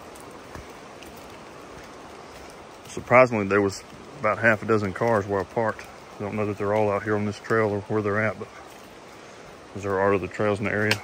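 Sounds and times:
raindrop ticks: 0:00.0 - 0:11.0
steady rain falling: 0:00.0 - 0:11.0.

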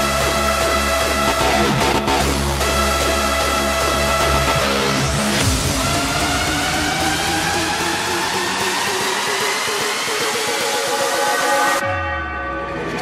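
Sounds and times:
deep bass: 0:00.0 - 0:10.0
electronic dance music build-up: 0:00.0 - 0:13.0.

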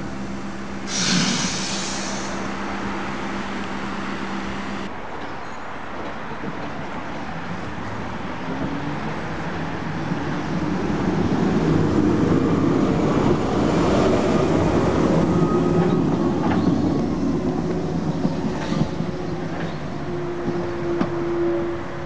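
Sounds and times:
railcar rumbling and humming: 0:00.0 - 0:22.0.

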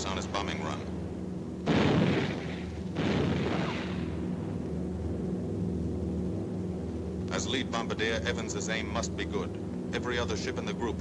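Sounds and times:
drone of aircraft engines: 0:00.0 - 0:11.0.

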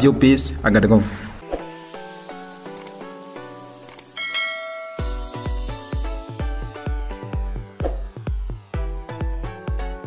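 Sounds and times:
background music of pitched notes: 0:00.0 - 0:10.0
quick clicks: 0:02.7 - 0:03.0, 0:03.8 - 0:04.2
bright bell chime: 0:04.2 - 0:05.7.

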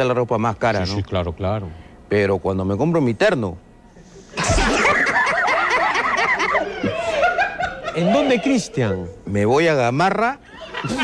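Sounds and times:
people laughing: 0:04.0 - 0:09.3, 0:10.4 - 0:11.0.

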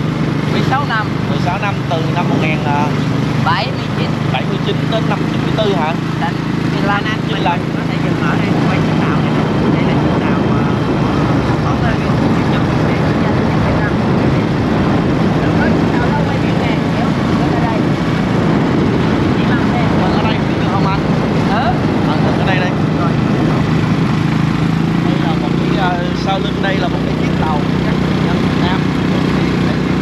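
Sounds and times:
motorbike engine running: 0:00.0 - 0:30.0
wind rushing over microphone: 0:00.0 - 0:30.0.

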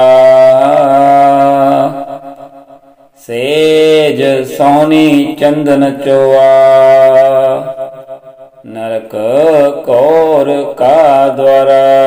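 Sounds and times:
man chanting on a low note: 0:00.0 - 0:12.0.

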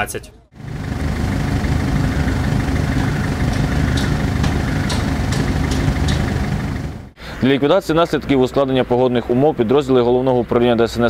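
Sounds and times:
truck engine idling: 0:00.1 - 0:07.4.

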